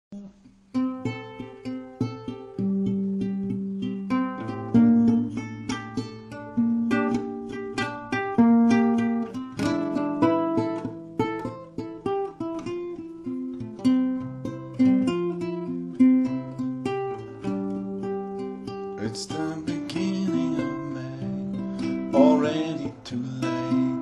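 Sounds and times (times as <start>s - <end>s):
acoustic guitar playing: 0.1s - 24.0s.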